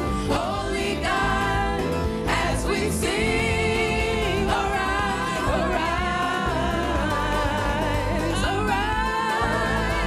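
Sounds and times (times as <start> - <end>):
instrumental backing with bass: 0.0 - 10.0
voices singing held notes: 0.1 - 10.0.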